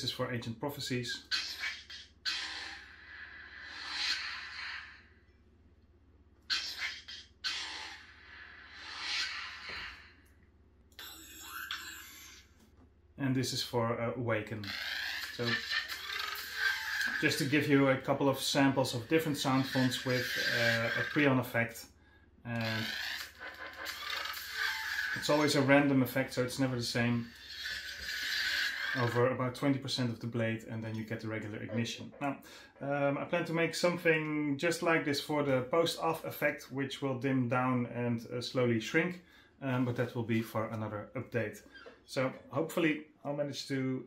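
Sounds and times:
lightsaber buzzing hum: 0:14.5 - 0:21.7, 0:22.5 - 0:30.2.

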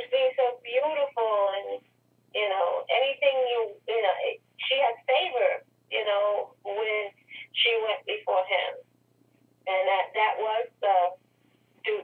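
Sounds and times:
person talking over telephone: 0:00.0 - 0:01.8, 0:02.4 - 0:08.8, 0:09.7 - 0:11.2
faint steady hum: 0:00.0 - 0:12.0.

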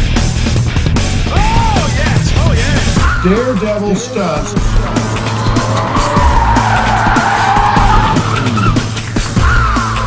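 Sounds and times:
music with steady beat: 0:00.0 - 0:10.0
car tyres squealing: 0:02.8 - 0:10.0.

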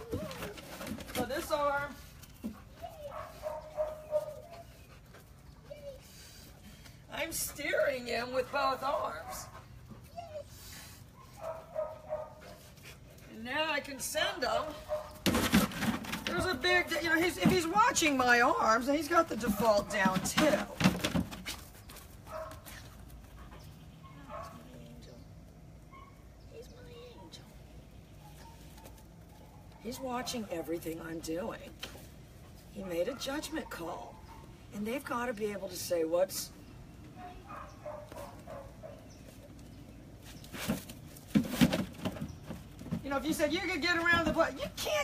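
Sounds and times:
young dog whining: 0:10.0 - 0:11.4.

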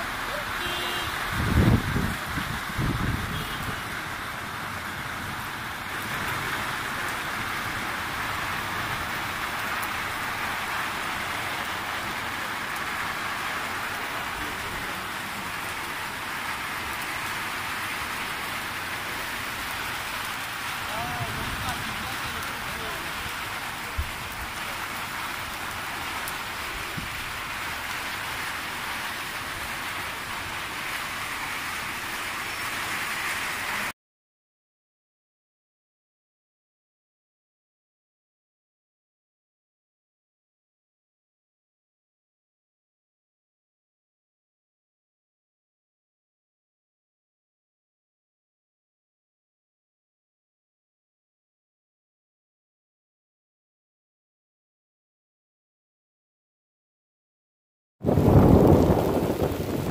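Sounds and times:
steady rain: 0:00.0 - 0:34.0, 0:58.0 - 0:59.9.

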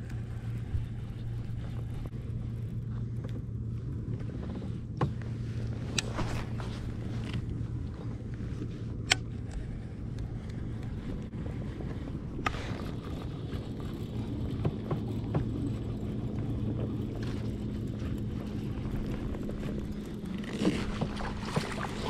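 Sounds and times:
low hum: 0:00.0 - 0:22.0
water noise: 0:00.0 - 0:22.0
wind: 0:00.0 - 0:22.0.

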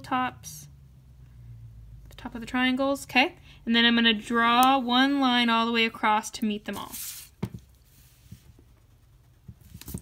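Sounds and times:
paper rustling: 0:09.6 - 0:10.0.

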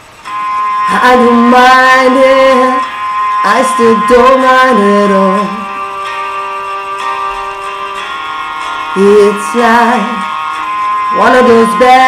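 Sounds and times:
guitar holding a chord: 0:00.0 - 0:12.0.

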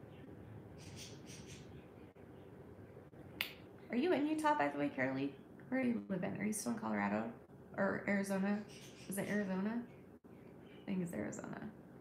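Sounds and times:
finger snap: 0:03.4 - 0:03.6.

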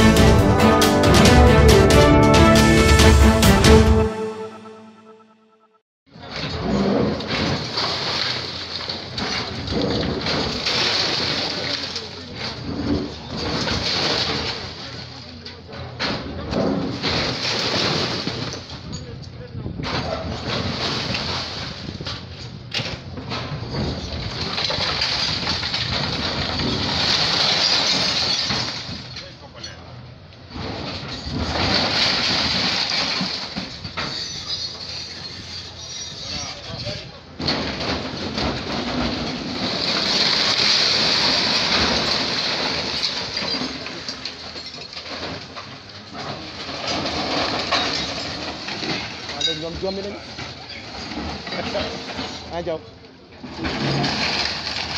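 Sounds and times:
excavator demolishing concrete: 0:06.2 - 0:54.9
sharp knocks and crashes: 0:06.3 - 0:14.8, 0:15.8 - 0:18.9, 0:30.5 - 0:34.8, 0:37.4 - 0:52.5, 0:53.5 - 0:54.9.

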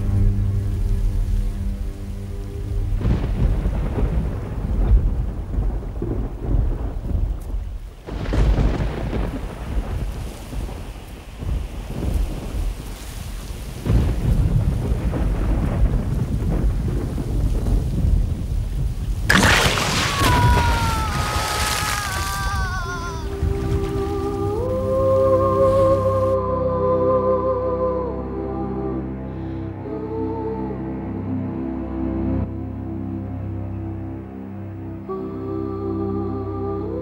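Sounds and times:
low sustained music: 0:00.0 - 0:04.8, 0:23.6 - 0:37.0
heavy rain: 0:00.0 - 0:26.5
rumbling thunder: 0:02.9 - 0:24.9.

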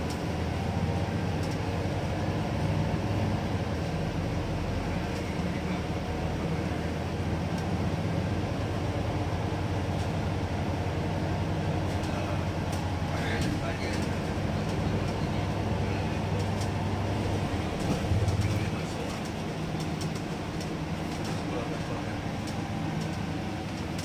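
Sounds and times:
bus engine drone: 0:00.0 - 0:24.0
road noise: 0:00.0 - 0:24.0.

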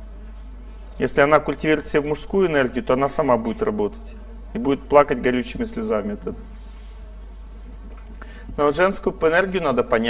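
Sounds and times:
steady low hum: 0:00.0 - 0:10.0
man speaking: 0:01.0 - 0:06.4, 0:08.5 - 0:10.0.

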